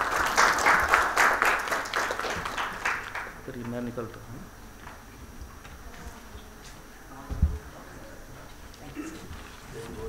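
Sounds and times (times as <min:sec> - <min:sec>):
faint murmur: 0:05.3 - 0:10.0.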